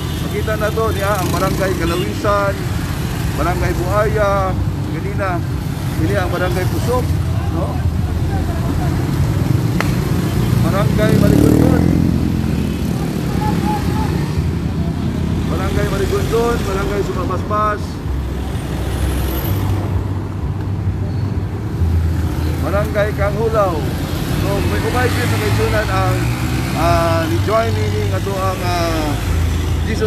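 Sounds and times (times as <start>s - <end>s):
motorcycle and car engines passing: 0.0s - 30.0s.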